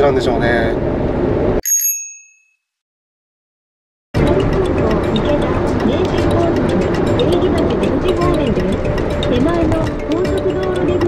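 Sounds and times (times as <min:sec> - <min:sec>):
van road noise: 0:00.0 - 0:01.6, 0:04.2 - 0:11.0
bright bell-like chime: 0:01.6 - 0:02.6.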